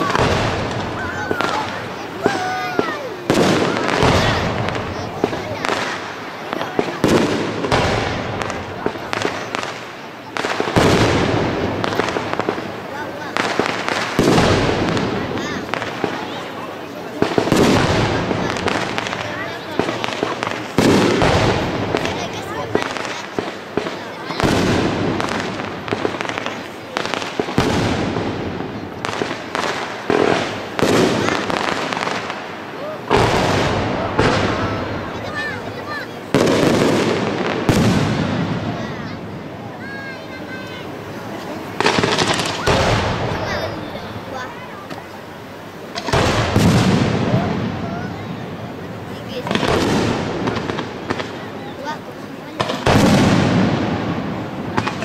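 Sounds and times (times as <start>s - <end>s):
fireworks whistles: 0.0s - 45.3s, 45.9s - 55.0s
fireworks bursting: 0.0s - 55.0s.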